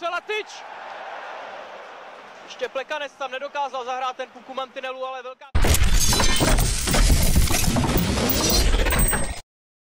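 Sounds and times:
crashing and shattering: 5.6s - 9.1s.

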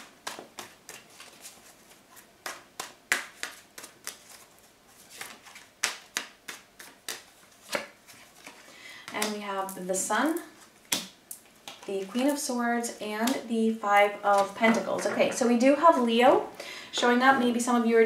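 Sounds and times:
cards shuffling with flicks: 0.0s - 9.8s.

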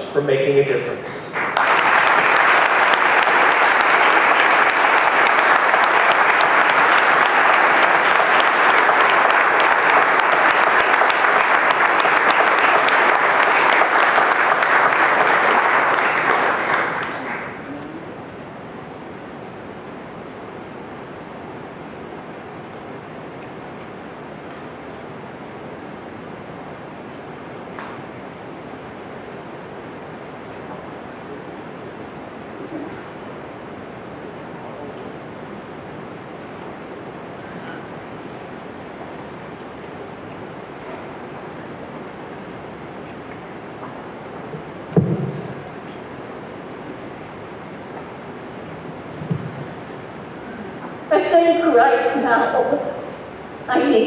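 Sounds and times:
low background noise: 0.0s - 54.0s
audience applauding: 1.3s - 18.0s.

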